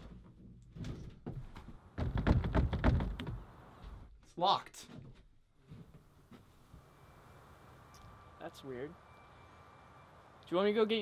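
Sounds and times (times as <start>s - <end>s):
door rattling and thunking: 0.0s - 3.5s.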